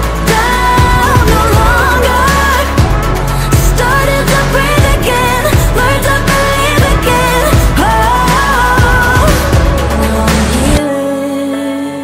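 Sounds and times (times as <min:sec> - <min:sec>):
pop song with woman singing: 0:00.0 - 0:12.0.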